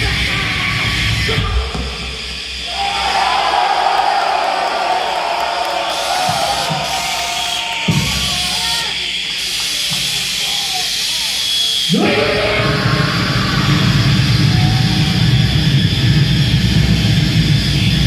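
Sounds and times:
steady high tone: 0:07.5 - 0:18.0
warbling wail through effects: 0:11.9 - 0:16.6.

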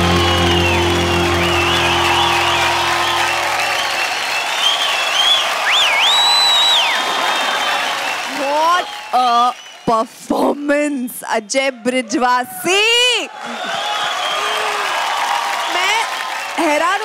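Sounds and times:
band's held final chord: 0:00.0 - 0:03.9
audience applauding and cheering: 0:00.0 - 0:10.1, 0:11.5 - 0:17.0.

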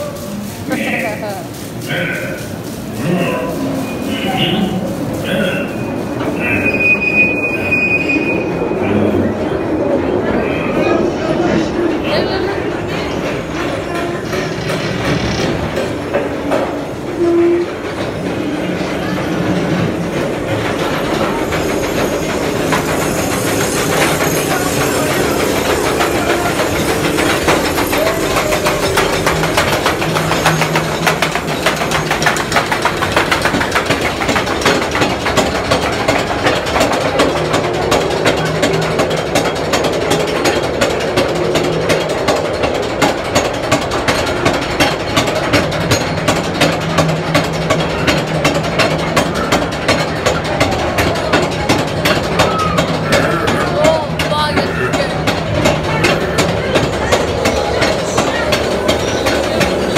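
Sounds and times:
train wheels clacking on track: 0:00.0 - 0:59.9.

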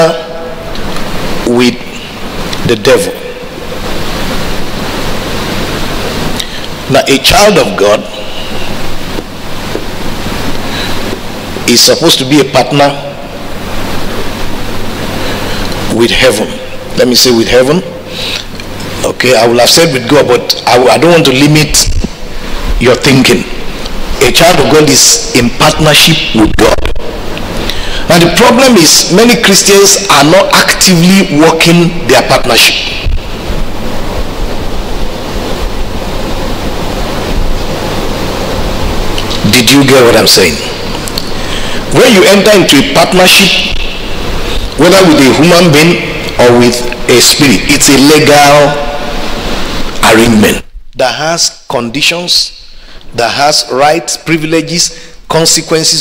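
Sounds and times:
steady rushing noise: 0:00.0 - 0:50.9
even hiss: 0:00.0 - 0:56.0
low constant hum: 0:00.0 - 0:56.0.

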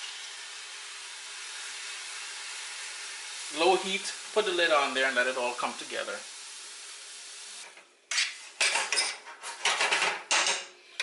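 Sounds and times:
metal spoon scraping a pan: 0:08.1 - 0:11.0.

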